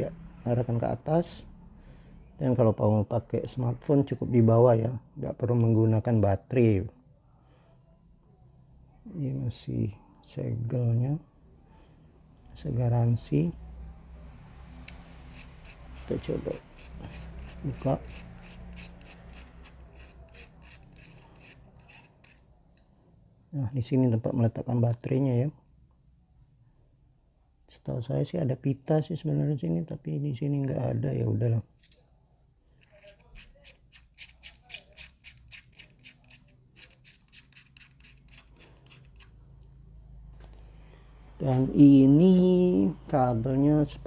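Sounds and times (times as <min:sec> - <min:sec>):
battery cap scraping: 0:15.3 - 0:22.5, 0:32.7 - 0:39.4.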